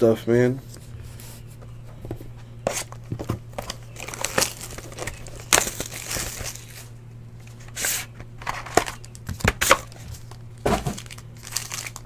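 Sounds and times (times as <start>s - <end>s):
steady low hum: 0.0s - 12.0s
plastic rustling: 2.0s - 12.0s.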